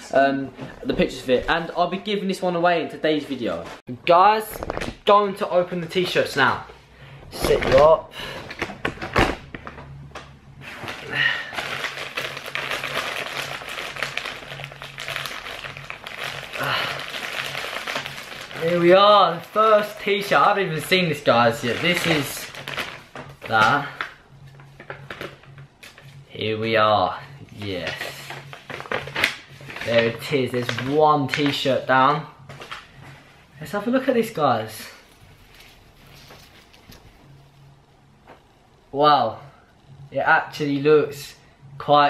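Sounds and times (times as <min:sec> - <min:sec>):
plastic bag rustling and tearing: 0:10.6 - 0:26.2, 0:27.7 - 0:31.9, 0:34.8 - 0:37.2.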